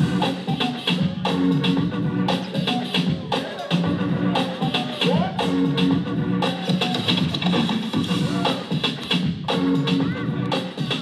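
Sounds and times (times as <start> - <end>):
breakbeat music: 0.0 - 11.0.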